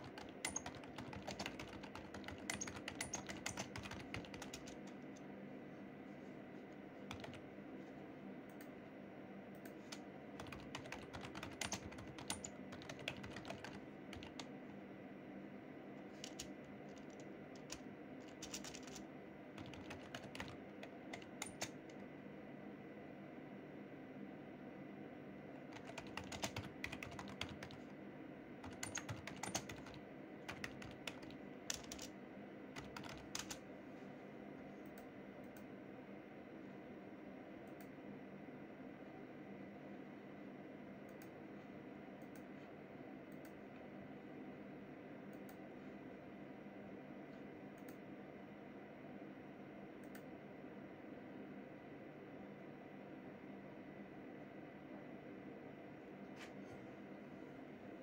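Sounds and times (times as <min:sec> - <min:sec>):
faint steady hum: 0:00.0 - 0:58.0.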